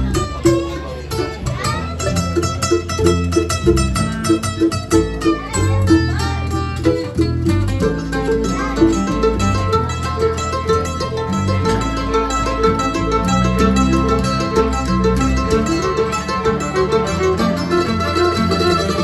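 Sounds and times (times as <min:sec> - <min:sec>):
mandolin picking: 0:00.0 - 0:19.0
strummed acoustic guitar: 0:00.0 - 0:19.0.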